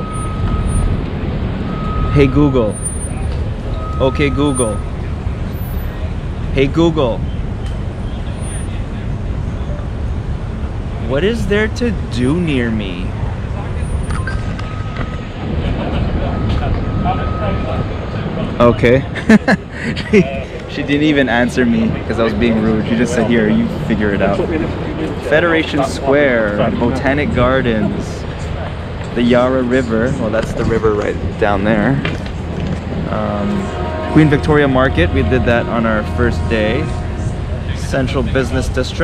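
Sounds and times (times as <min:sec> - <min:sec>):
city street traffic rumble: 0:00.0 - 0:39.0
faint voices: 0:02.0 - 0:39.0.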